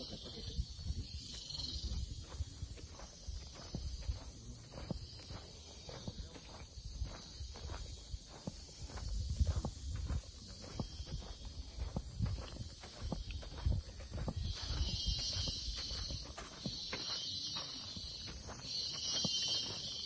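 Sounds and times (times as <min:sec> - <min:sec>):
footsteps on concrete: 0:00.0 - 0:20.0
high-pitched insect buzz: 0:00.0 - 0:20.0.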